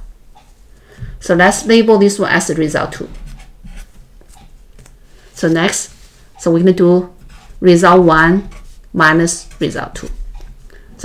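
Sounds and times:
marker pen scratching: 0:03.0 - 0:04.5, 0:07.2 - 0:10.6.

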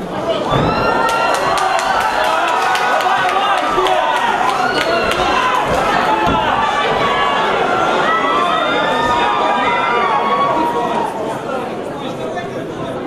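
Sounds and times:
crowd shouting and cheering: 0:00.0 - 0:11.8.

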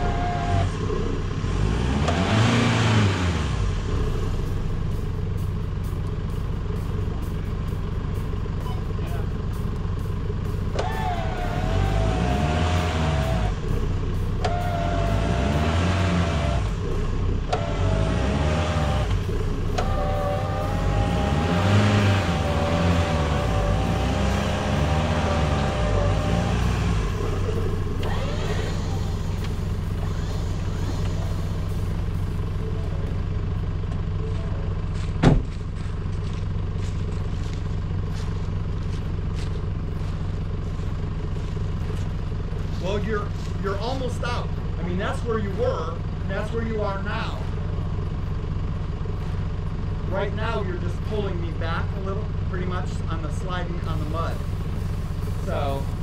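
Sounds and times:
engine running: 0:00.0 - 0:56.0
electric winch whining: 0:19.0 - 0:32.1.

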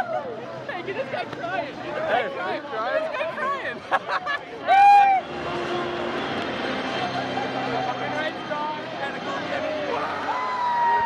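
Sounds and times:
loud held shout: 0:04.6 - 0:05.2, 0:09.9 - 0:11.0.

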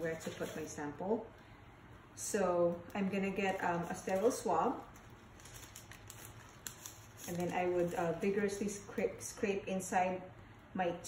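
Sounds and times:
wrapper rustling: 0:00.0 - 0:01.0, 0:02.8 - 0:09.4.

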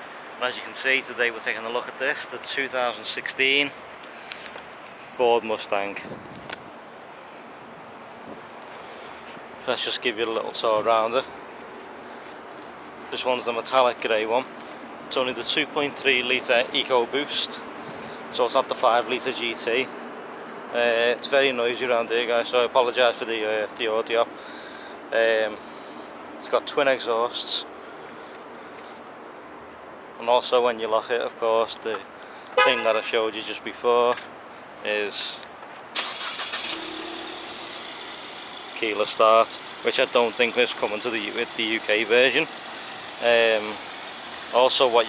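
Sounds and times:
outdoor background rush: 0:00.0 - 0:45.0.

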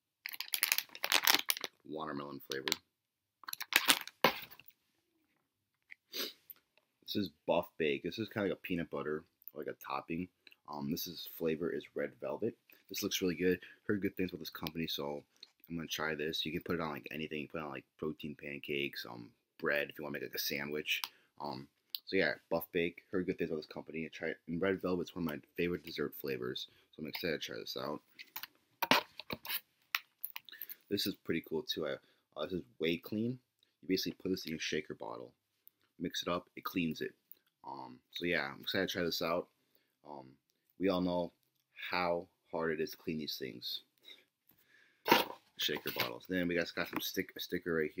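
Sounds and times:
packaging crackling: 0:00.2 - 0:01.8, 0:03.5 - 0:04.4.

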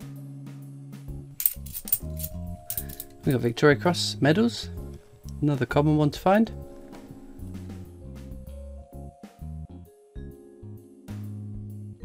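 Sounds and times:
lounge music: 0:00.0 - 0:12.0
coins clinking: 0:01.4 - 0:03.6.

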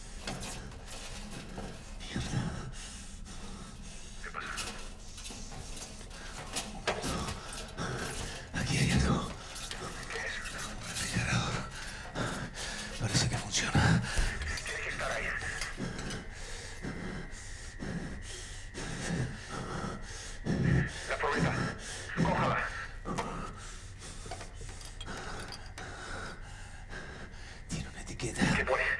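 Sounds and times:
gear knocks and scrapes: 0:00.0 - 0:16.9, 0:24.1 - 0:26.4
heavy breathing: 0:00.0 - 0:28.6
muffled indistinct voices: 0:00.2 - 0:17.2, 0:20.5 - 0:23.5.

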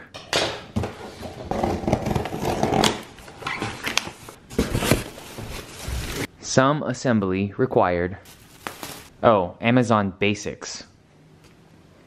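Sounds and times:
cardboard rustling and scraping: 0:00.8 - 0:06.3, 0:08.3 - 0:09.1
plastic wrapping rustling: 0:02.0 - 0:06.3, 0:08.3 - 0:09.1.

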